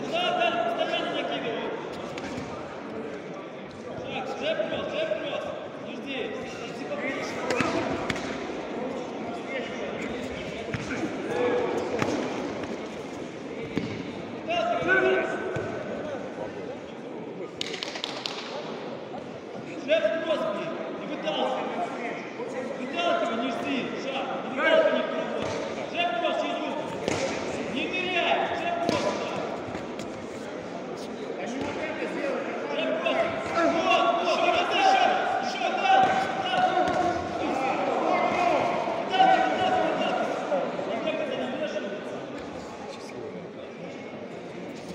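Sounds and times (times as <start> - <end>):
voices shouting in echoing hall: 0.0 - 44.0.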